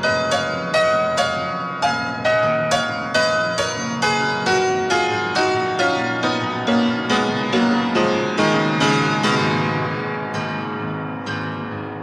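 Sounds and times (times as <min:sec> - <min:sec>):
solo piano chords: 0:00.0 - 0:12.0.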